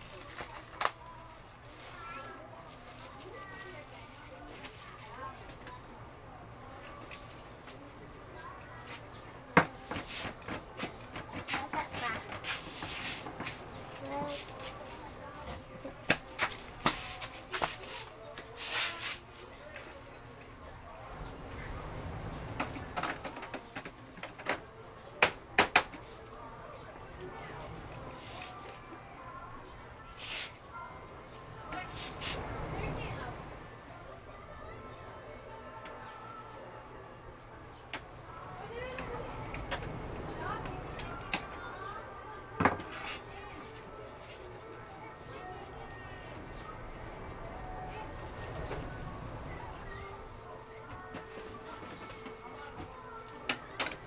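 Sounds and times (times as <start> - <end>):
music: 9.6 - 21.6, 22.9 - 54.0.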